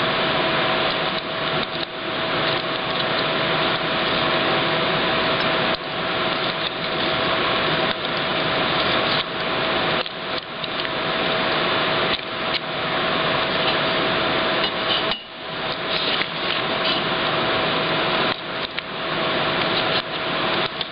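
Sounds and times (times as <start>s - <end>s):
mechanical hum: 0.0s - 20.9s.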